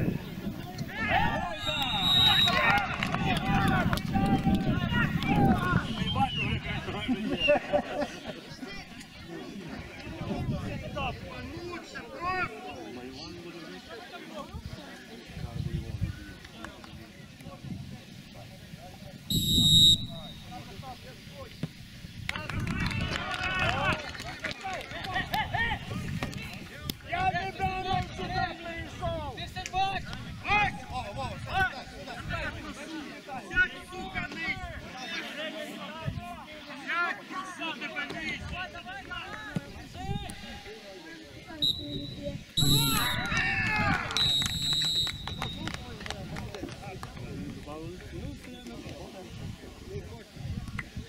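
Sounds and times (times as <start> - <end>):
people shouting and cheering: 0.0 - 13.0, 22.4 - 26.5, 41.6 - 46.0
footballers calling out: 0.0 - 14.6, 19.2 - 21.8, 41.5 - 46.6.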